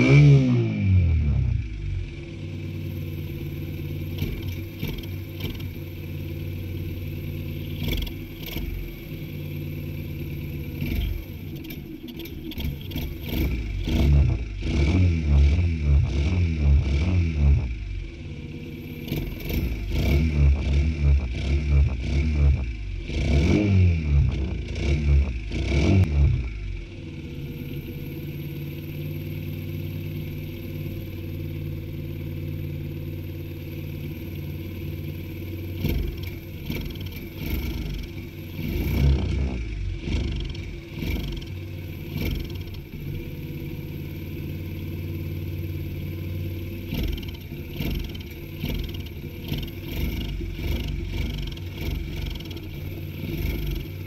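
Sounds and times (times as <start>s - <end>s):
small engine idling and revving: 0.0s - 54.0s.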